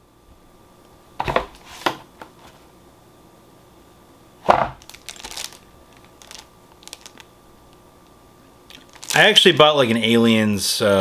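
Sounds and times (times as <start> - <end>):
packaging crinkling: 4.7 - 7.8, 8.7 - 9.6.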